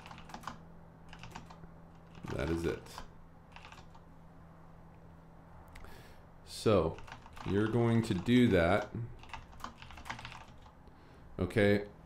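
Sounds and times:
faint keyboard typing: 0.0 - 4.1, 6.9 - 10.9
low steady hum: 0.0 - 12.0.

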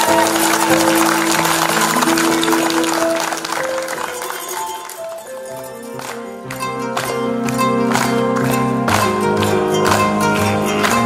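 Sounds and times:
audience applauding: 0.0 - 11.0
live instrumental music: 0.0 - 11.0.

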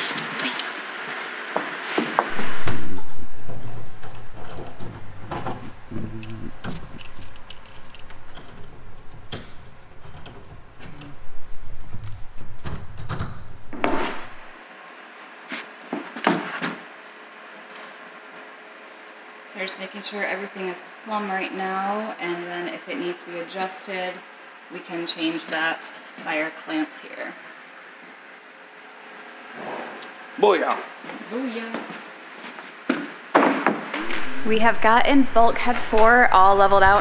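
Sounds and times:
low rumble: 2.3 - 14.6, 34.0 - 37.0.

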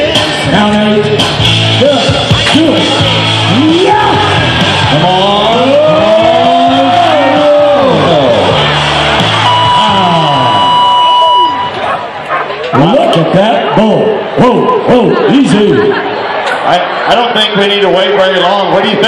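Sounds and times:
loud music over loudspeakers: 0.0 - 11.8
steady high tone: 9.4 - 11.9.

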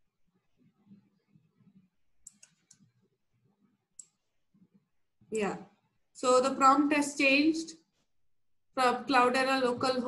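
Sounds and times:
computer mouse clicks: 0.9 - 3.1, 3.9 - 4.8.

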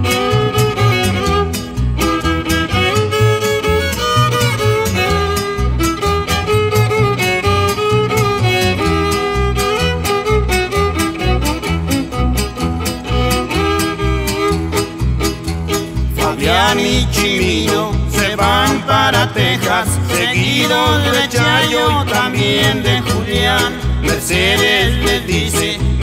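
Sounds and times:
acoustic guitar: 0.0 - 26.0
fiddle melody: 0.0 - 26.0
upright bass beat: 0.0 - 26.0.

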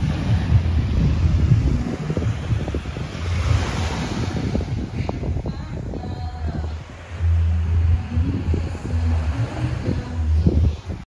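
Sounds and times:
small waves washing on beach: 0.0 - 11.0
wind buffeting microphone: 0.0 - 11.0.

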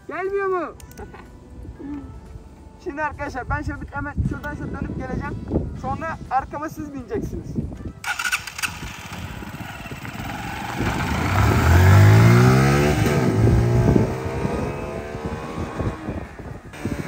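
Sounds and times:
motorcycle accelerating: 8.0 - 17.0.

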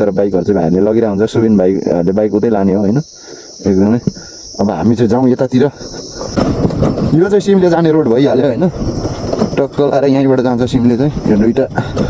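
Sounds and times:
man talking: 0.0 - 6.1, 7.0 - 8.8, 9.5 - 12.0
high-pitched insect drone: 0.0 - 12.0.

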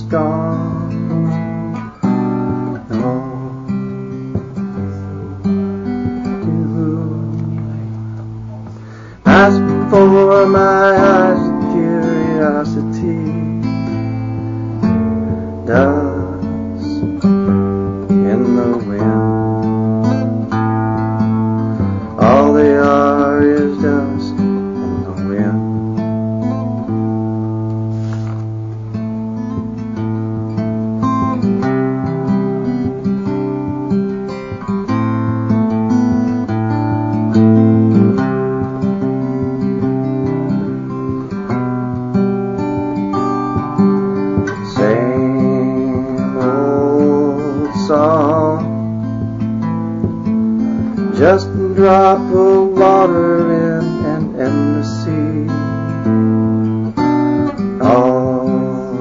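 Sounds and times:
acoustic guitar playing: 0.0 - 59.0.

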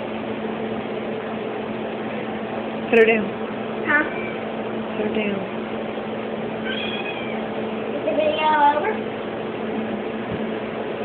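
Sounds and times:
steady low hum: 0.0 - 11.0
cat meowing: 6.6 - 7.5.

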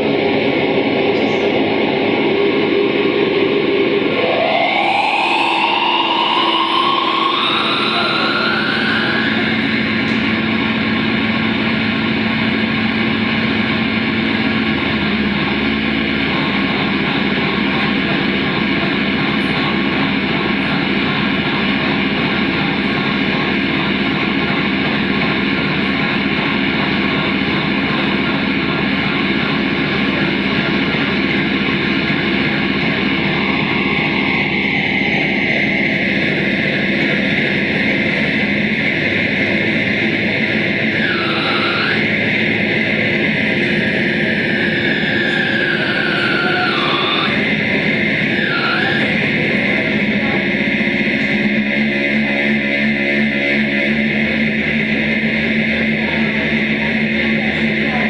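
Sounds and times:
droning electronic noise music: 0.0 - 58.0
sweeping pitch swoops: 1.2 - 14.8.

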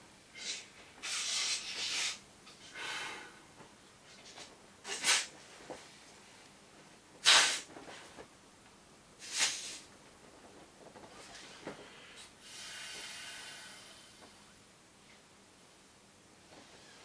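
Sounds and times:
sharp breaths into inflatable: 11.4 - 14.2.

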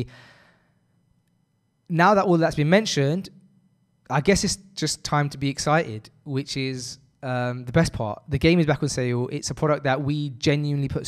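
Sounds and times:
man exhaling: 0.0 - 0.7
man speaking: 1.9 - 3.4, 4.1 - 11.0.

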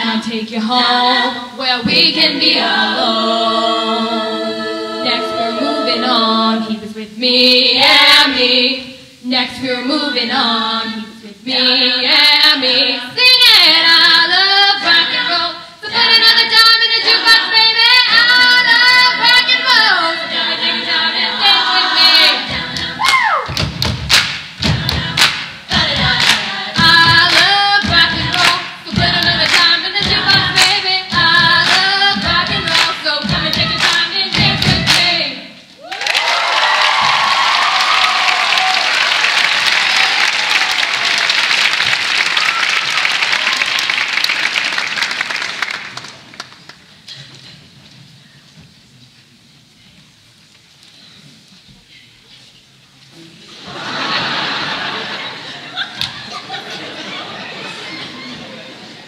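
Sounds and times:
women singing a cappella: 0.0 - 23.6, 24.6 - 35.7
steady thumping beat: 21.6 - 35.3
audience applause: 35.8 - 46.8.

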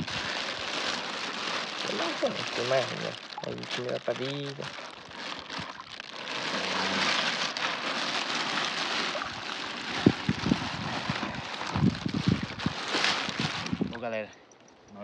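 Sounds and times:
sharp splashes and knocks: 0.0 - 13.9
plastic bag crinkling: 0.0 - 14.0
water pouring and splashing: 0.0 - 14.1.

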